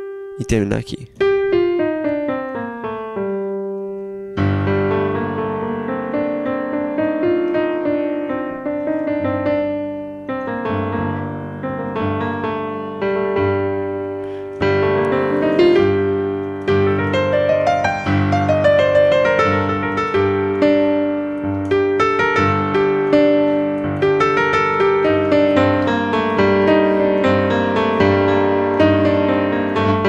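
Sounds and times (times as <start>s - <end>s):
digital piano playing: 0.0s - 30.0s.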